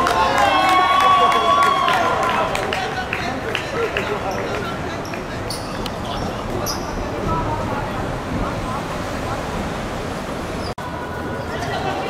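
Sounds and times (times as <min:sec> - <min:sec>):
players shouting: 0:00.0 - 0:07.7.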